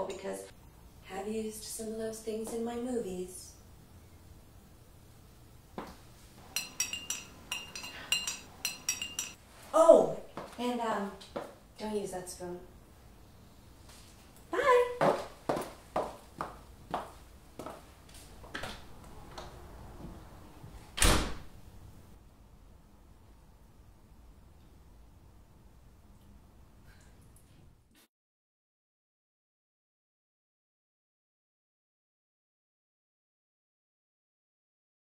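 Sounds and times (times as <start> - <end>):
spoon clinking in ceramic mug: 6.5 - 9.4
door banging shut: 21.0 - 21.6.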